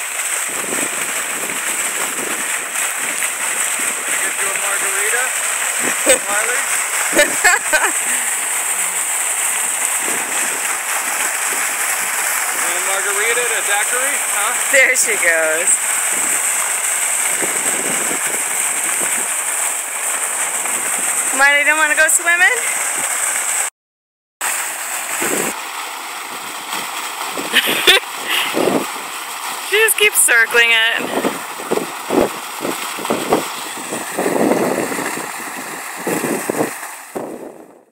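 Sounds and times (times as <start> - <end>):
fountain splashing into pool: 0.0 - 23.7, 24.4 - 37.9.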